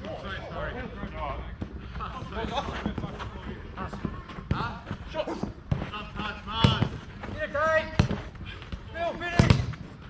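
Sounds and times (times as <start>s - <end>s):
football being kicked: 5.7s - 7.0s, 7.8s - 8.3s, 9.2s - 9.8s.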